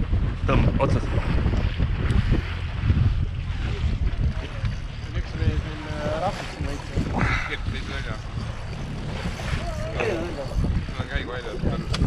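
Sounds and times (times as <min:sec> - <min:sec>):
wind rumble on microphone: 0:00.0 - 0:12.0
faint voices: 0:04.3 - 0:12.0.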